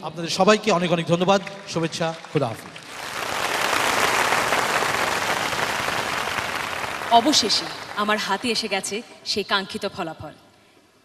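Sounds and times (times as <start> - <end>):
audience applauding: 2.3 - 8.8.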